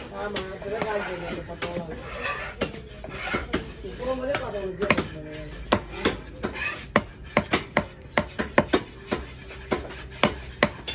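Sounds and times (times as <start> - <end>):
knife chopping on wooden block: 0.0 - 10.9.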